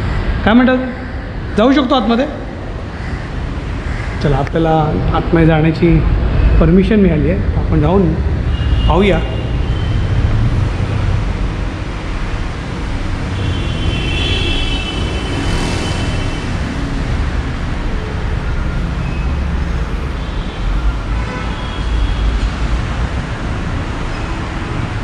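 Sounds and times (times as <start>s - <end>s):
low traffic rumble: 0.0s - 25.0s.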